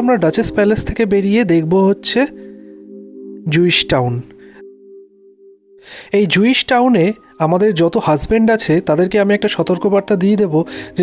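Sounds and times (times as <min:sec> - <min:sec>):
narrator speaking: 0:00.0 - 0:02.5, 0:03.4 - 0:04.4, 0:06.0 - 0:11.0
held low chord music: 0:00.0 - 0:11.0.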